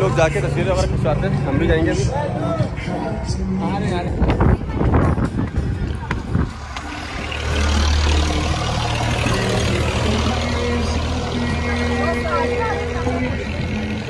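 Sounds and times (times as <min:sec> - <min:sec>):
people's voices: 0:00.0 - 0:14.0
truck engine low rumble: 0:00.0 - 0:14.0.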